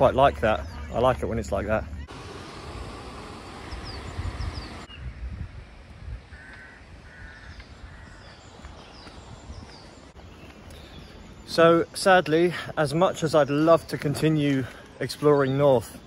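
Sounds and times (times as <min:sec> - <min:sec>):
small birds chirping: 0:00.0 - 0:02.2, 0:03.4 - 0:16.0
bird calling: 0:00.0 - 0:02.6, 0:03.3 - 0:05.3, 0:06.3 - 0:16.0
steady hiss: 0:02.0 - 0:04.9.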